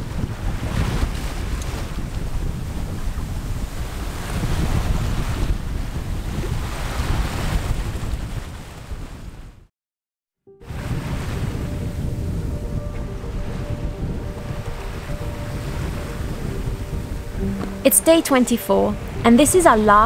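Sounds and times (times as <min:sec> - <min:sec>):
sea rushing around boat: 0:00.0 - 0:09.6, 0:10.6 - 0:20.0
wind buffeting microphone: 0:00.0 - 0:09.6, 0:10.6 - 0:20.0.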